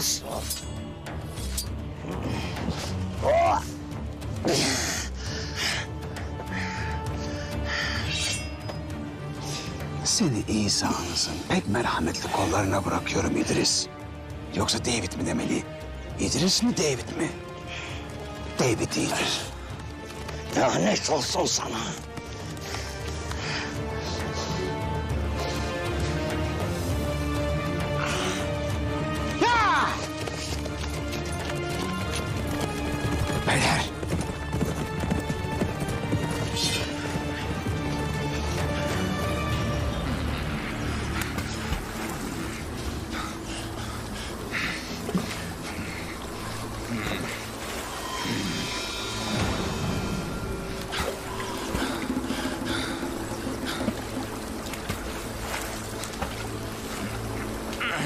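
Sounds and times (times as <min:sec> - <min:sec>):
horse hooves clip-clopping: 0:18.2 - 0:23.7, 0:29.2 - 0:40.4, 0:50.4 - 0:57.8.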